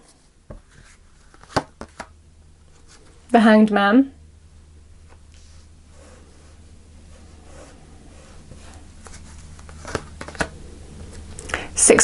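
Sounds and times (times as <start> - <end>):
cards sliding on cloth: 5.0 - 10.5.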